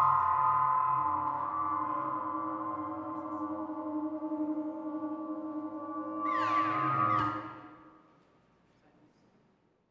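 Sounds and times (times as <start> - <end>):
electronic tones with pitch sweeps: 0.0 - 7.9.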